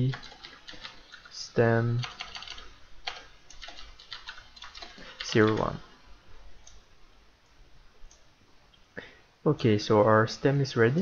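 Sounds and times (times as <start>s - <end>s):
computer keyboard typing: 0.0s - 5.8s.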